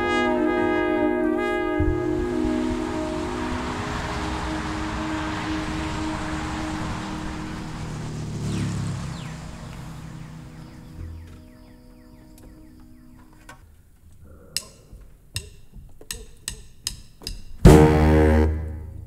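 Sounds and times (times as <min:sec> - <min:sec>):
wash of noise: 0:00.0 - 0:11.9
brass ensemble chord: 0:00.0 - 0:13.5, 0:17.7 - 0:19.0
held low tone: 0:00.0 - 0:13.5
faint percussion ticks: 0:10.8 - 0:17.8.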